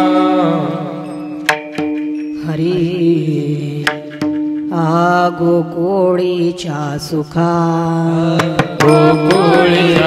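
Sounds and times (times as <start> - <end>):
person singing devotional song: 0.0 - 1.4, 2.2 - 10.0
hand cymbal strikes: 0.7 - 5.2, 8.3 - 10.0.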